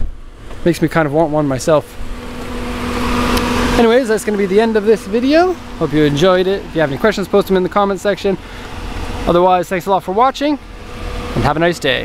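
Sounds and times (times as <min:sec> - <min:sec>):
fan-like rushing noise: 0:00.0 - 0:12.0
mechanical hum: 0:00.0 - 0:12.0.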